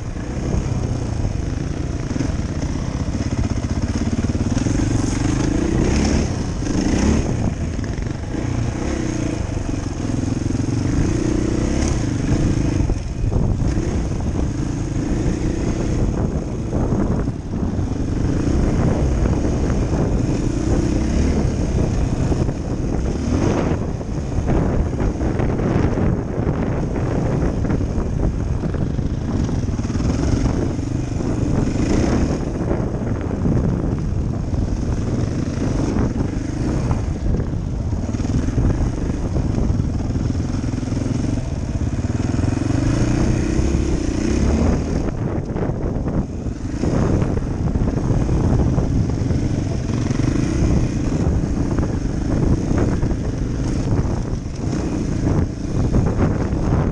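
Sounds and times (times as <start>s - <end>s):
dirt bike engine revving: 0.0s - 56.9s.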